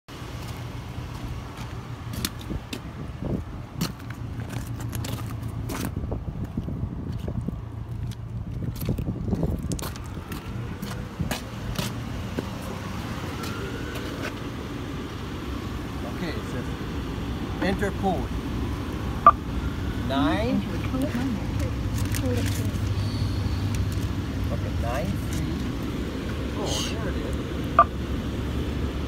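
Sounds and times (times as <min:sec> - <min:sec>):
vehicle engine idling: 0:00.1 - 0:29.0.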